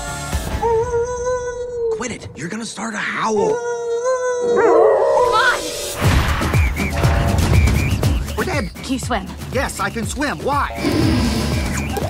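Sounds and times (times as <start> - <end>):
trailer music with thumping beat: 0.0 - 1.2, 5.6 - 12.0
person imitating wolf howl: 3.4 - 5.6.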